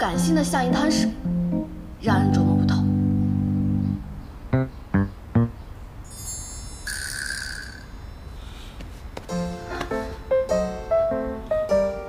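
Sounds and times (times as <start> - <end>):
clear ringing tone: 6.1 - 8.4
glittering chime shimmer: 6.1 - 8.4.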